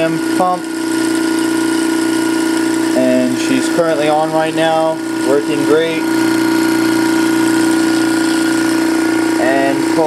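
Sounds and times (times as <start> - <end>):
vacuum pump humming: 0.0 - 10.0.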